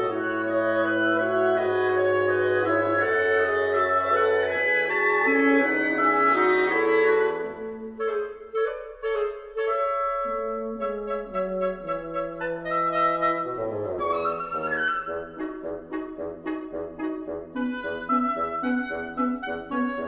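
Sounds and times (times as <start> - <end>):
wind quintet chamber music: 0.0 - 20.0.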